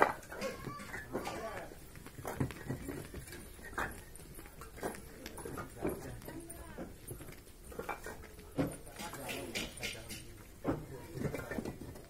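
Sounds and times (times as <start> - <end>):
bricks clacking together: 0.0 - 4.0, 7.6 - 12.0.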